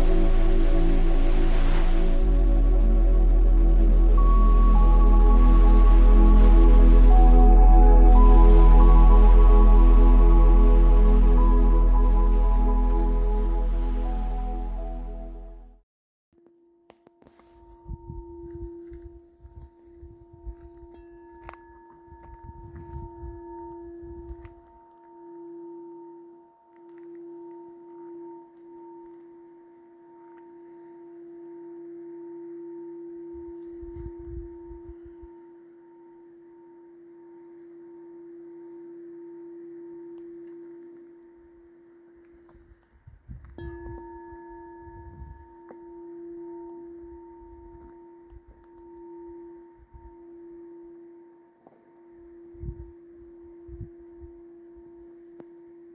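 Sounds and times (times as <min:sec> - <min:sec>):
singing bowl tone: 0:00.0 - 0:15.7, 0:16.9 - 0:55.9
low rumble: 0:00.0 - 0:15.8.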